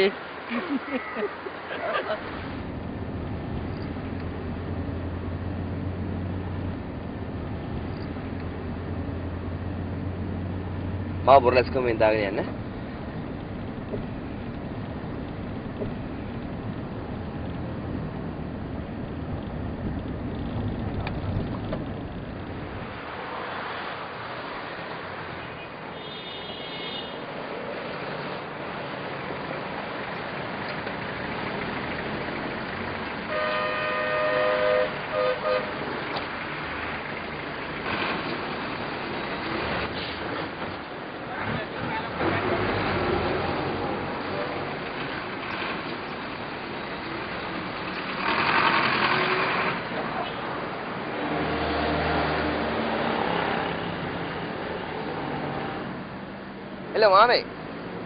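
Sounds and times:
street noise: 0:00.0 - 0:58.0
traffic noise: 0:00.0 - 0:58.0
vehicle engine rumble passing: 0:01.5 - 0:25.4, 0:27.3 - 0:56.6
vehicle horn blasts: 0:25.9 - 0:27.2, 0:33.3 - 0:35.8
higher faint horn: 0:33.3 - 0:35.9.

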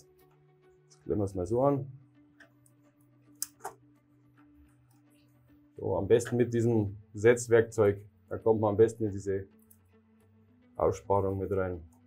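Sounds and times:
sharp clicks of wire clamping: 0:03.4 - 0:03.8.

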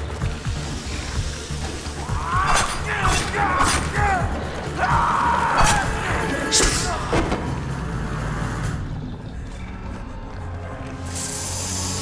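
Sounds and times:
low sustained film score: 0:00.0 - 0:12.0.

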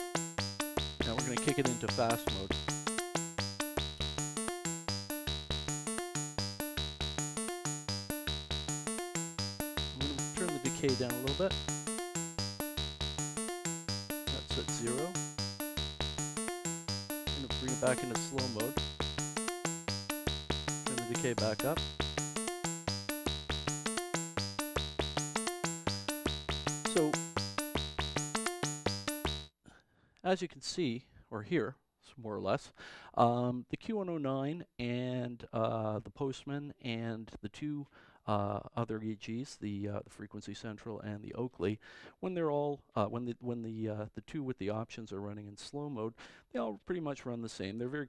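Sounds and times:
synthesizer sequenced snappy notes: 0:00.0 - 0:29.5.

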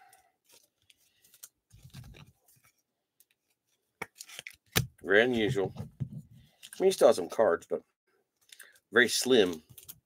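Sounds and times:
cards and plastic sleeves rustling: 0:00.0 - 0:07.7, 0:08.3 - 0:10.0.

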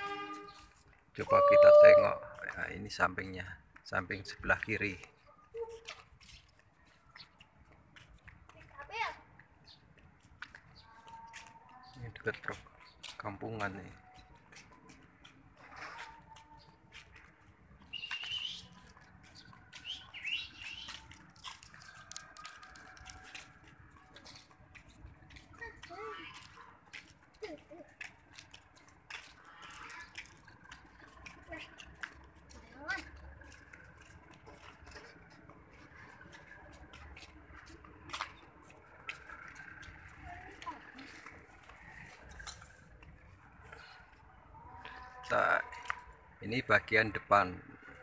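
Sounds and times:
footsteps clicks and scuffs: 0:05.0 - 0:44.3
bird chirping: 0:17.8 - 0:21.2.

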